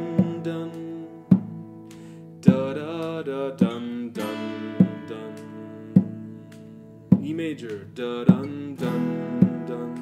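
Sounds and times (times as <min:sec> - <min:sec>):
acoustic guitar strums: 0:00.0 - 0:10.0.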